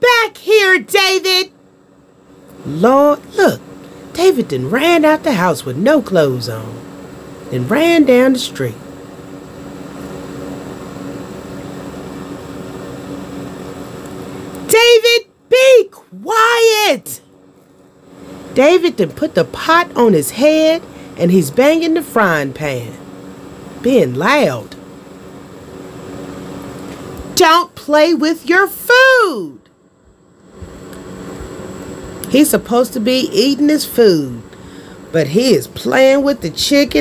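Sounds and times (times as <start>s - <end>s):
low mechanical hum: 0.0s - 37.0s.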